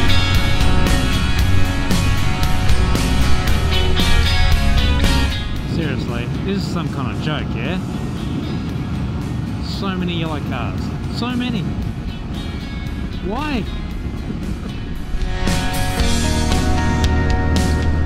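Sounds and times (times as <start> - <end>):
motorcycle engine and wind rumble: 0.0 - 18.0.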